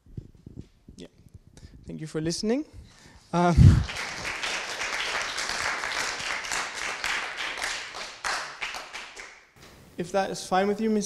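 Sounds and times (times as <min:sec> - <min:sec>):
audience applause: 0:03.8 - 0:09.4.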